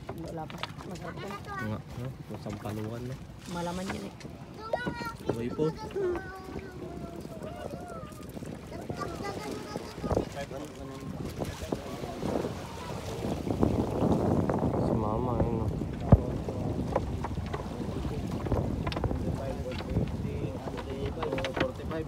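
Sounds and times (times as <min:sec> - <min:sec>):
wind on microphone: 0:00.0 - 0:22.0
people talking: 0:00.2 - 0:13.2, 0:14.8 - 0:16.9, 0:19.2 - 0:22.0.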